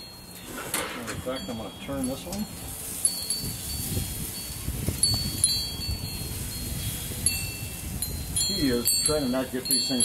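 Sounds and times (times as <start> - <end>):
wind chimes ringing: 0.0 - 10.0.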